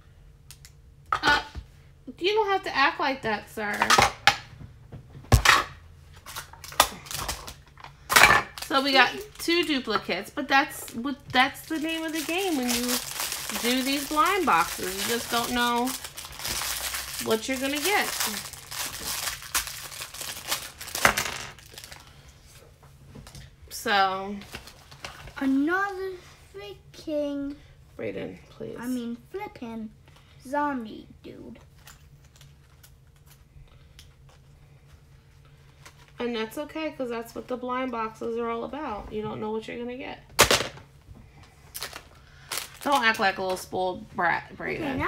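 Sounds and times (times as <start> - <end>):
foil packets crinkling: 6.2 - 7.8, 8.5 - 10.2, 10.8 - 22.3, 41.7 - 43.7.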